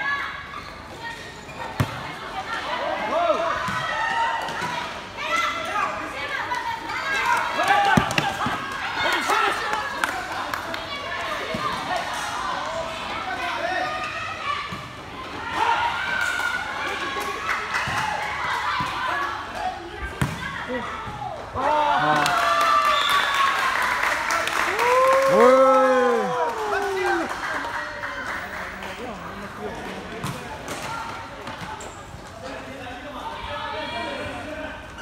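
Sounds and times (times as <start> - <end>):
ball kicked and bouncing: 20.2 - 20.4, 30.2 - 30.5.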